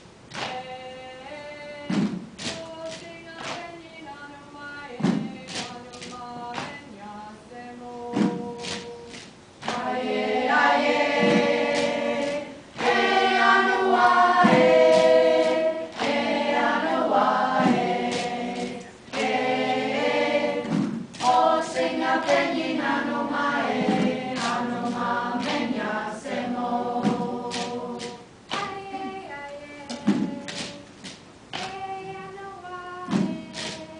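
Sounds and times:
group singing in unison: 0:00.3 - 0:33.9.

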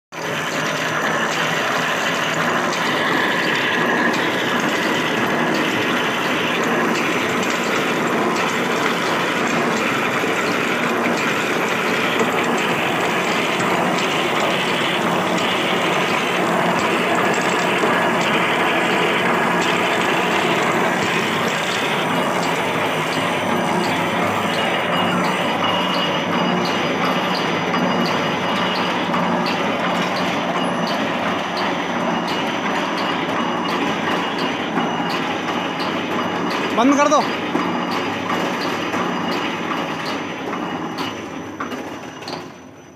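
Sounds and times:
regular machine ticking: 0:00.2 - 0:41.2
machine clattering: 0:00.2 - 0:42.6.

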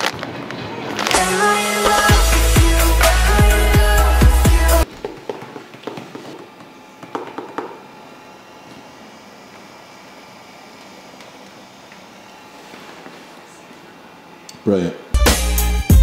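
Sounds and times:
room hum: 0:00.0 - 0:15.8.

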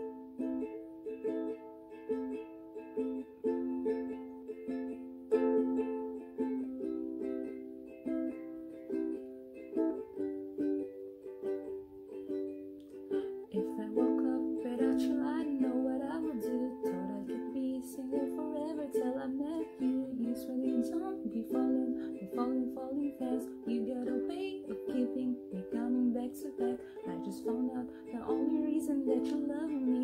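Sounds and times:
ukulele strumming chords: 0:00.0 - 0:30.0.

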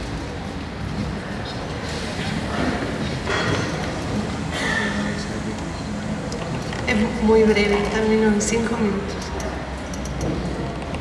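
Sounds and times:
large room background noise: 0:00.0 - 0:11.0.

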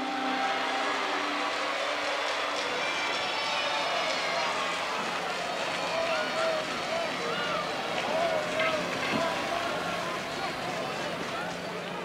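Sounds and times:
large crowd noise: 0:00.0 - 0:12.0.

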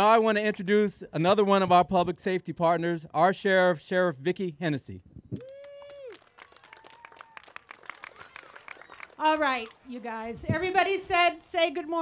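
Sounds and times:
scattered applause: 0:05.4 - 0:10.4.

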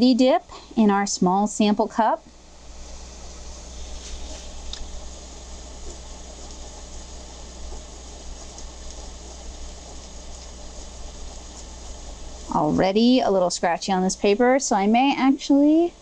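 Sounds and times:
steady low hum: 0:00.0 - 0:16.0
faint ticks: 0:05.8 - 0:12.5.

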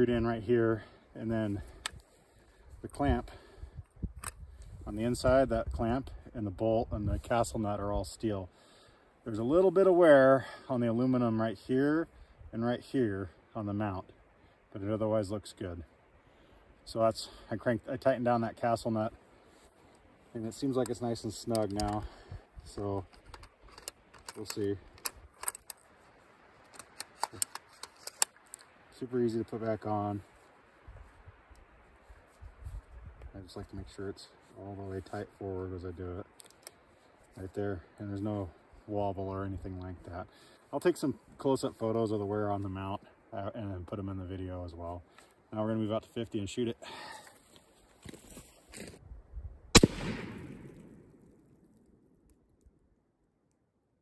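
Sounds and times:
rifle shot with long echo: 0:49.7 - 0:52.2.

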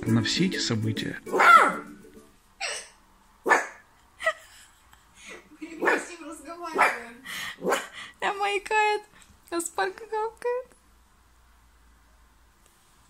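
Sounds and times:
puppy barking and yipping: 0:01.3 - 0:01.9, 0:03.5 - 0:03.8, 0:05.8 - 0:06.1, 0:07.6 - 0:08.0.

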